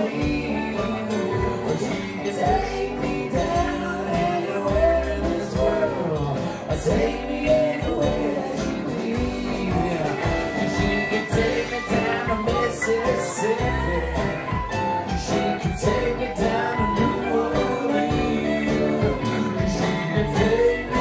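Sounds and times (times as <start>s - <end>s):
live folk-rock band: 0.0s - 21.0s
person singing: 0.0s - 21.0s.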